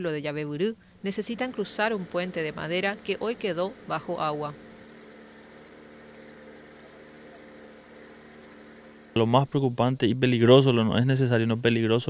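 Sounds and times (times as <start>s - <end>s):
faint engine hum: 0.0s - 12.0s
low hiss: 0.0s - 12.0s.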